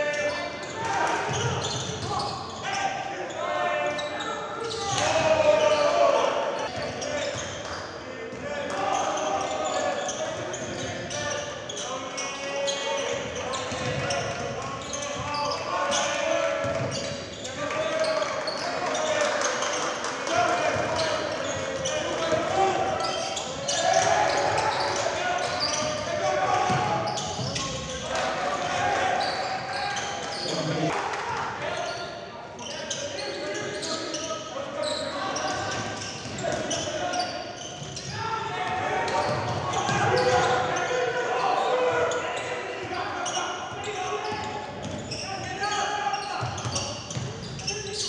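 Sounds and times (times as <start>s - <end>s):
players calling out: 0.0s - 7.6s, 8.6s - 32.1s, 32.7s - 48.0s.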